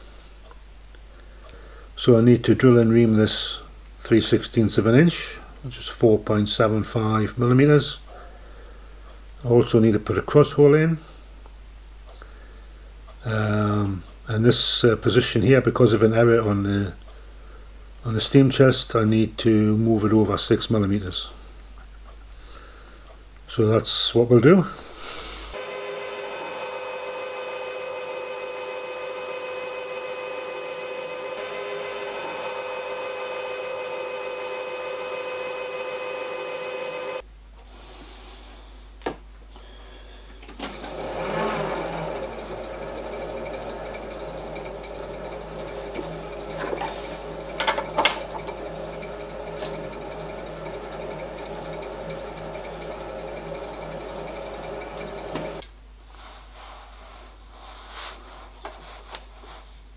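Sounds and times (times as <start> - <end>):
drill cutting metal: 25.6 - 37.2, 40.6 - 55.6
milling machine motor whine: 25.6 - 37.2, 40.5 - 55.6
reamer scraping: 40.6 - 55.6.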